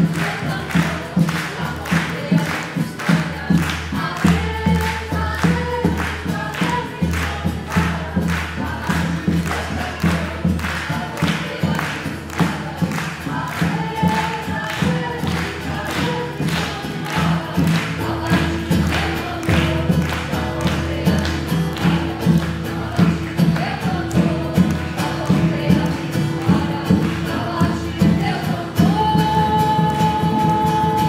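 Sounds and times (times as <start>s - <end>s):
group of voices singing: 0.0s - 31.0s
steady drum beat: 0.0s - 31.0s.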